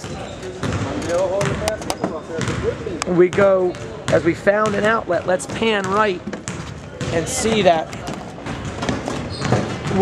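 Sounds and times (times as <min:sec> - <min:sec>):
basketballs bouncing: 0:00.0 - 0:10.0
crowd chatter: 0:00.0 - 0:10.0.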